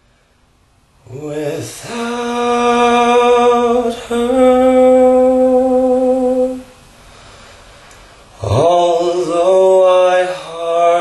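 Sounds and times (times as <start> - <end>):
man singing a long note: 1.0 - 6.8, 8.4 - 11.0.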